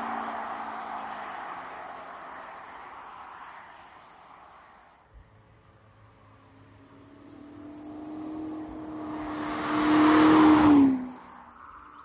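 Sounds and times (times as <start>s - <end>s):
car engine driving by: 0.0s - 12.0s.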